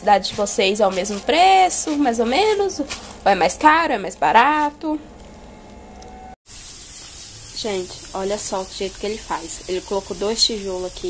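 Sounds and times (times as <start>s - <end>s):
fuel burning with a hiss: 6.5s - 11.0s.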